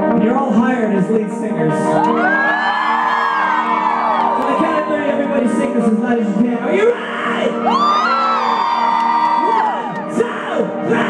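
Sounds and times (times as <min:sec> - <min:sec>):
person whooping: 0:06.9 - 0:11.0.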